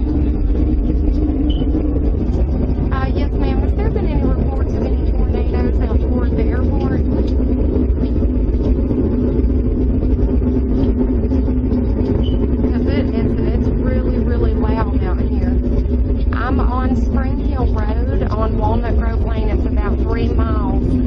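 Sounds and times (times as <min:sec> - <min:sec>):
muffled voices: 0:00.0 - 0:08.9, 0:10.7 - 0:21.0
steady low rumble: 0:00.0 - 0:21.0.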